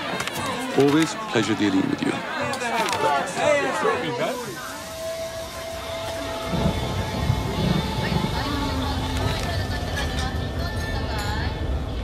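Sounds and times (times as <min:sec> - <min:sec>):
steam hissing: 0:04.0 - 0:09.9.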